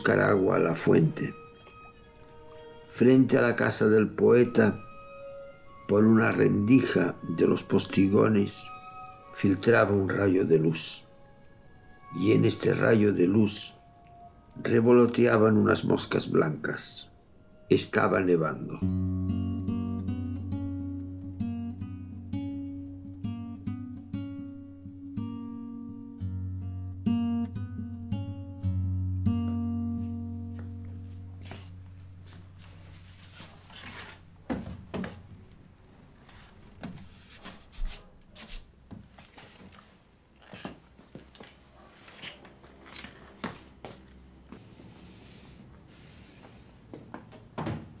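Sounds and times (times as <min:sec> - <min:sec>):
acoustic guitar picking: 0:18.8 - 0:32.4
faint rustles: 0:31.4 - 0:34.4.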